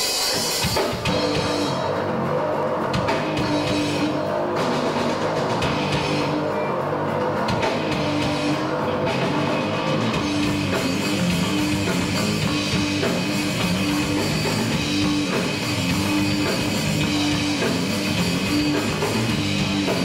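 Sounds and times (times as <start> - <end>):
heavy metal band playing: 0.0 - 20.0.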